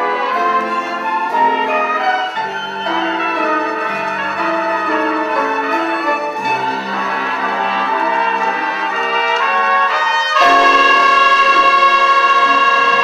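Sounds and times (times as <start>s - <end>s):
brass-led orchestra dance music: 0.0s - 13.0s.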